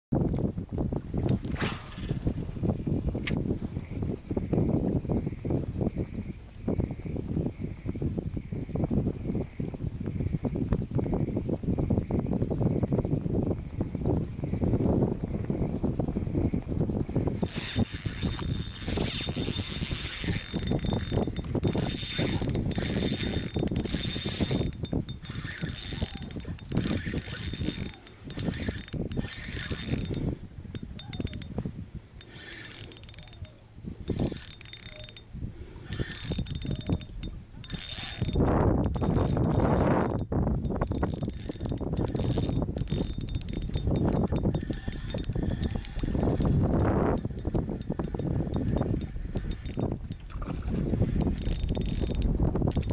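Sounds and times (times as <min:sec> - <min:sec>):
wind buffeting microphone: 0:00.1 - 0:52.9
fishing reel whirring: 0:01.2 - 0:03.4, 0:17.4 - 0:52.9.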